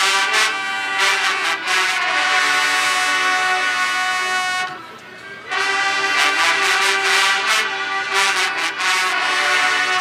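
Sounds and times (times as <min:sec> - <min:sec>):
brass band holding a chord: 0:00.0 - 0:04.8, 0:05.4 - 0:10.0.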